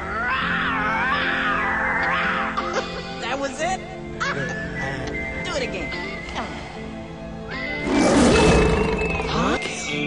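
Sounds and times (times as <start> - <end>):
film score music: 0.0 - 10.0
cartoon lion cub roaring: 7.8 - 9.0.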